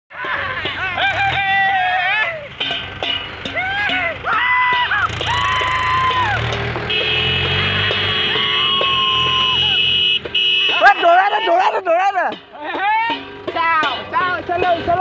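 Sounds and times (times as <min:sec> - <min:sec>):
people shouting drawn-out calls: 0:00.2 - 0:02.6, 0:03.4 - 0:06.6, 0:07.2 - 0:10.0, 0:10.6 - 0:13.2.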